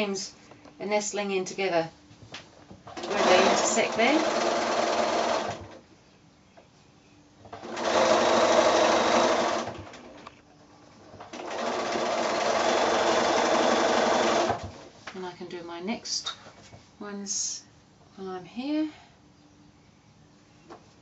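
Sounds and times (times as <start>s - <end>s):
sewing machine stitching: 2.9s - 5.8s, 7.6s - 10.2s, 11.3s - 14.8s.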